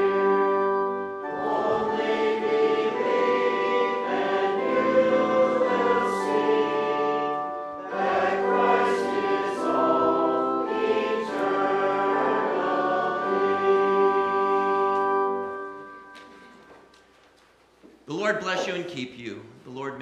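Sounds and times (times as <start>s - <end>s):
congregation singing a hymn: 0.0s - 16.9s.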